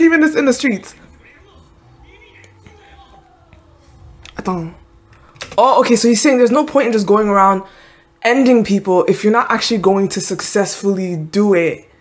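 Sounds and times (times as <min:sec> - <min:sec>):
faint speech: 0:01.0 - 0:04.4.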